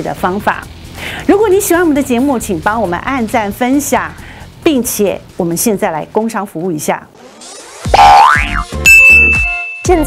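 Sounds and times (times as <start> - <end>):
rising pitch sweep: 7.2 - 9.8
bright held ding: 8.8 - 10.0.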